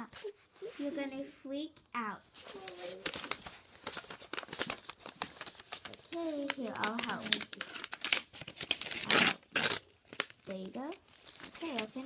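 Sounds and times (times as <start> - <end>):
tissue paper crinkling: 2.3 - 12.0.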